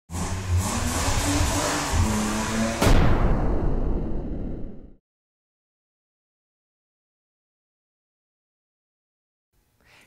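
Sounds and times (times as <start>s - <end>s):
engine revving: 0.1s - 2.9s.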